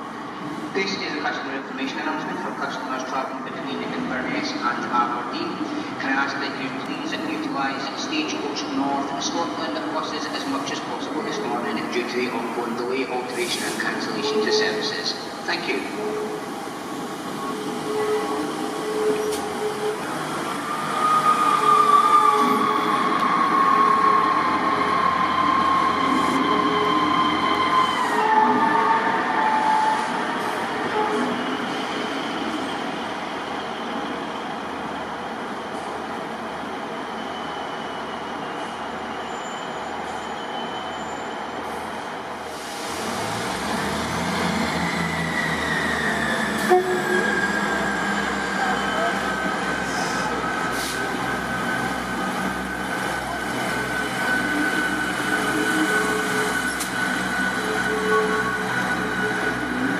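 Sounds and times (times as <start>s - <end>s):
high whining train tones: 13.2s - 34.1s, 37.0s - 59.9s
diesel train rumbling past: 41.6s - 59.9s.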